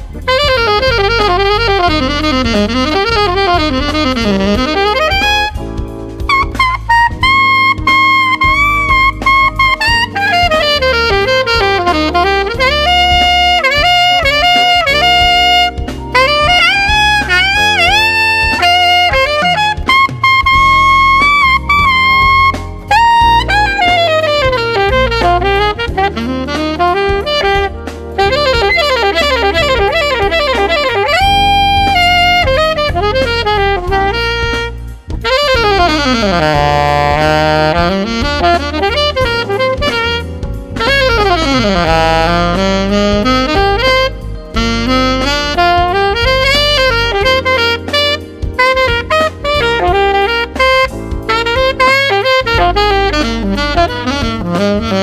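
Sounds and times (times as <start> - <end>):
alto saxophone melody: 0.0 - 55.0
backing track: 0.0 - 55.0.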